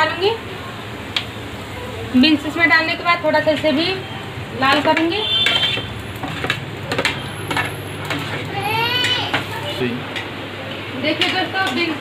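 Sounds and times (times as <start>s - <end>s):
child calling out: 8.6s - 9.7s.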